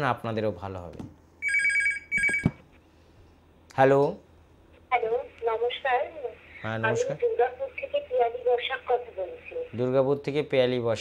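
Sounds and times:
telephone ringing: 0:01.4 - 0:02.7.

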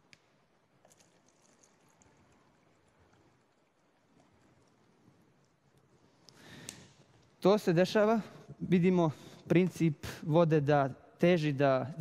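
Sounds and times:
water trickling into plastic cups: 0:00.4 - 0:07.4.

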